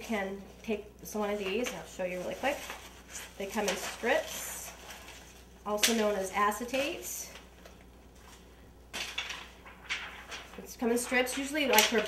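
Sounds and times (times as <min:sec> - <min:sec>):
plastic rustling: 0:01.1 - 0:12.0.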